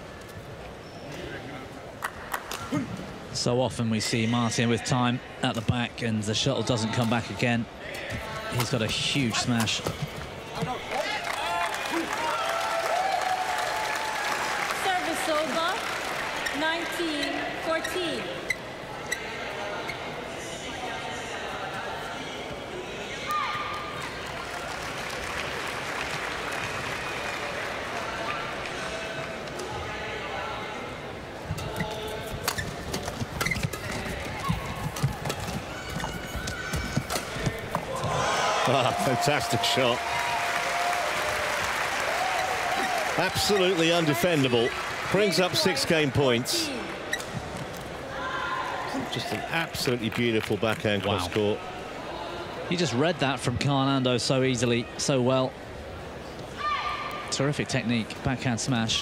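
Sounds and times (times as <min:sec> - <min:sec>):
crowd cheering: 0:10.5 - 0:17.0, 0:23.3 - 0:29.2, 0:34.2 - 0:47.1
shoes squeaking on court: 0:31.4 - 0:38.2.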